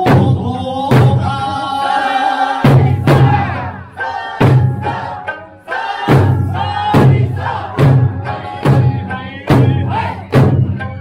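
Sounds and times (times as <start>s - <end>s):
large barrel drums struck: 0.0s - 1.4s, 2.6s - 3.8s, 4.4s - 5.2s, 6.1s - 10.9s.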